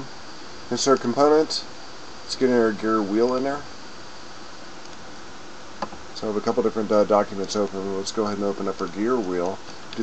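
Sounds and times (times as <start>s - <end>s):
faint high whine: 0.0s - 10.0s
microphone hiss: 0.0s - 10.0s.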